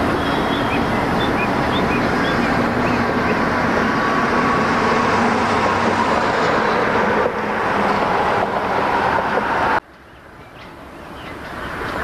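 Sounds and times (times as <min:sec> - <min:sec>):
train wheels rumbling on rails: 0:00.0 - 0:12.0.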